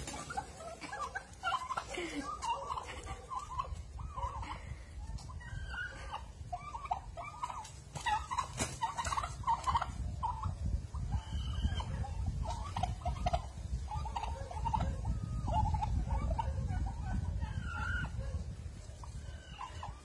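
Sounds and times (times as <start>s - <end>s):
turkeys calling: 0.0s - 20.0s.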